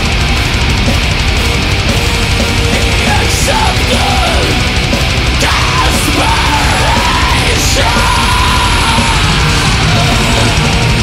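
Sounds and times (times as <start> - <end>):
metal band playing: 0.0 - 11.0.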